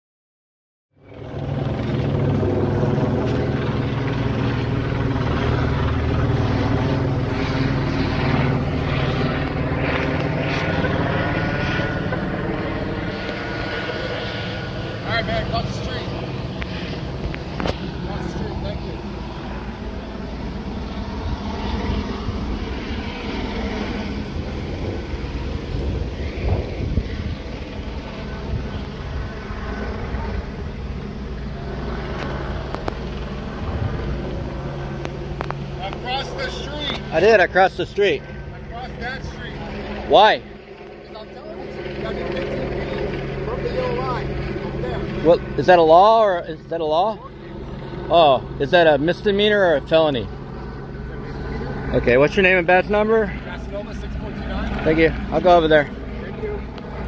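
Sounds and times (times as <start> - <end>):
low engine drone: 0.9 - 57.0
faint voices: 35.6 - 48.7, 49.8 - 57.0.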